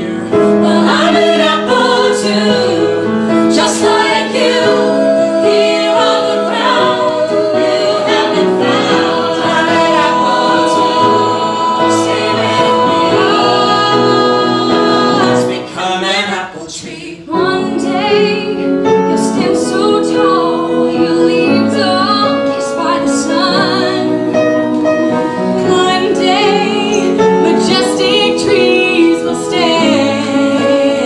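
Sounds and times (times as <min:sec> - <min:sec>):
group singing in harmony: 0:00.0 - 0:31.0.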